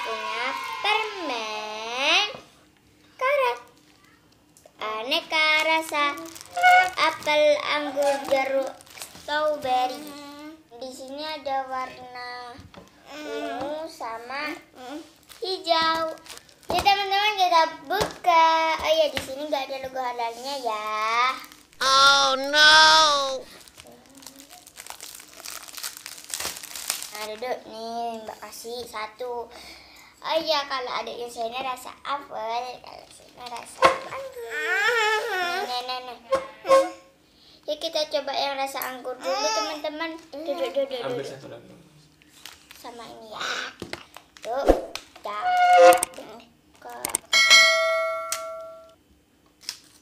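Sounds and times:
plastic wrapping crinkling: 3.6 - 10.3, 14.8 - 27.6, 42.1 - 43.2, 49.6 - 50.0
bell-like chime: 47.4 - 48.9.

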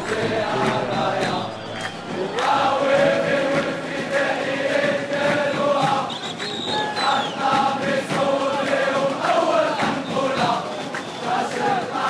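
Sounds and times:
crowd singing a chant: 0.0 - 12.0
noise of the stands: 0.0 - 12.0.

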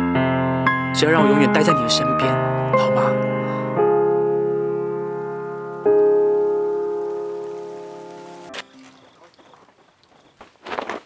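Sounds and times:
piano chord ringing: 0.0 - 9.2
faint rain hiss: 1.2 - 11.0.

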